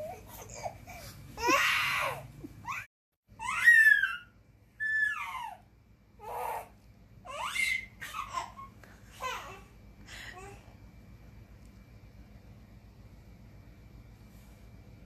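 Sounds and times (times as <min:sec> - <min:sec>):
toddler squealing: 0:03.4 - 0:05.6.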